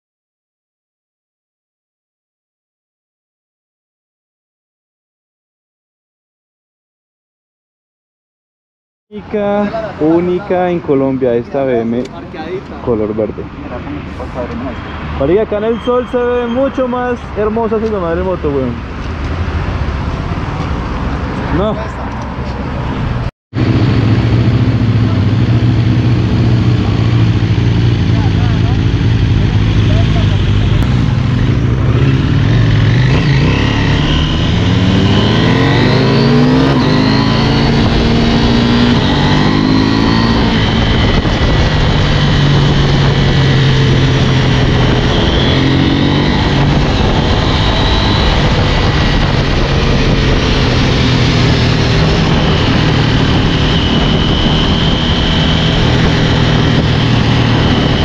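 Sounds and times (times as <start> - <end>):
wind rushing over microphone: 18.5 - 58.0
motorcycle engine revving through gears: 23.1 - 58.0.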